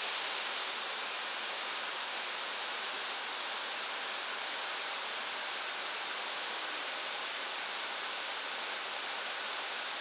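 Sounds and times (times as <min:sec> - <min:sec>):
cockpit air and engine hiss: 0:00.0 - 0:10.0.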